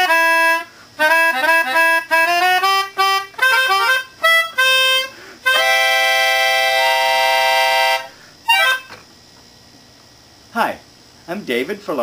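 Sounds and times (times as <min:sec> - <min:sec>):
reedy keyboard wind instrument chord: 0:00.0 - 0:09.0.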